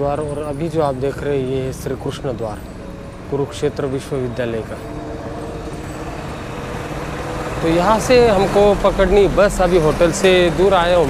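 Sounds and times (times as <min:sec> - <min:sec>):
street traffic engine hum: 0:00.0 - 0:11.0.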